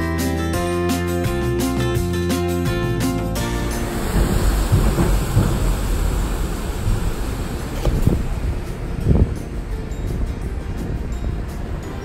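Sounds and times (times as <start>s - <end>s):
road rumble on steel bridge: 0.6s - 12.0s
wind buffeting microphone: 3.8s - 12.0s.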